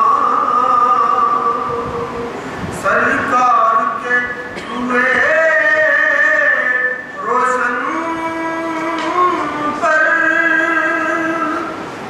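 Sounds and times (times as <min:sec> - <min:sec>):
man chanting a long sung note: 0:00.0 - 0:11.8.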